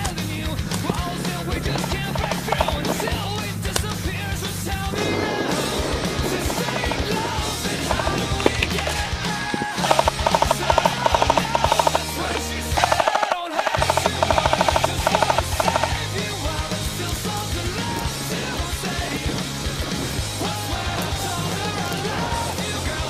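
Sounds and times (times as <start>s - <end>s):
airsoft machine gun bursts: 0.0s - 23.0s
rock music: 0.0s - 23.0s.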